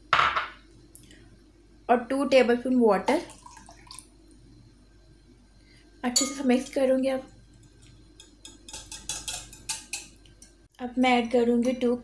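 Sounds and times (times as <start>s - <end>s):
whisk clicking against glass bowl: 8.2s - 10.1s.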